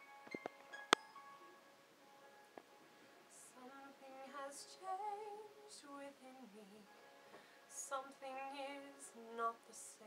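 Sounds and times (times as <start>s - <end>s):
faint karaoke backing track: 0.0s - 10.0s.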